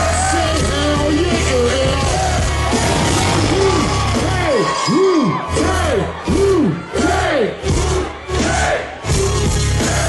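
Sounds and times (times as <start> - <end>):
deep bass: 0.0 - 4.5, 5.4 - 10.0
crowd yelling: 0.0 - 10.0
hip-hop music through speakers: 0.0 - 10.0.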